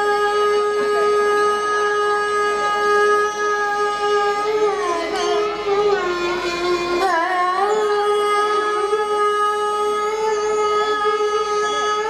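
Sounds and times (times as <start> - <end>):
bamboo flute long note: 0.0 - 12.0
faint accompaniment: 0.0 - 12.0.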